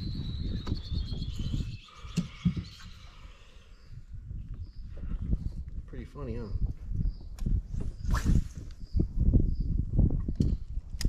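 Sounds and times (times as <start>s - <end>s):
bird singing high whistled notes: 0.0s - 4.9s, 6.5s - 9.8s.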